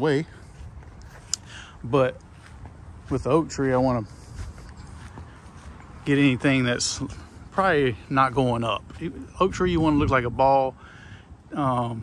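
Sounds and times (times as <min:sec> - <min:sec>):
soft footsteps on grass: 0:00.0 - 0:10.8.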